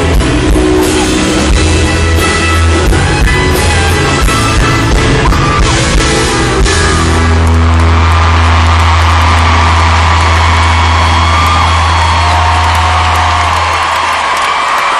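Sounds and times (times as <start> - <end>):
crowd cheering: 0.0 - 14.9.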